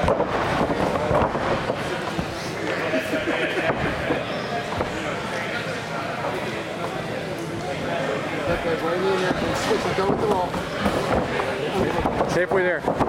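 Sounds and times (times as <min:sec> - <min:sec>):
background chatter of voices: 0:00.0 - 0:13.0.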